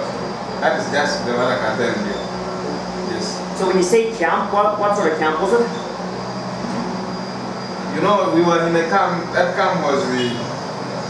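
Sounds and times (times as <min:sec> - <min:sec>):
low constant hum: 0:00.0 - 0:11.0.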